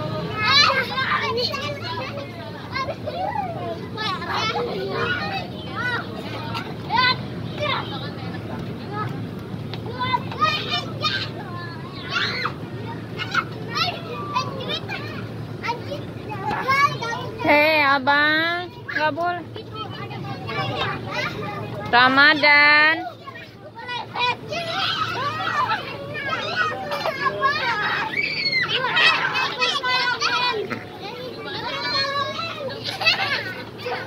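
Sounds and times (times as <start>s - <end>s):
children shouting and squealing: 0.0s - 34.0s
fairground background hum: 0.0s - 34.0s.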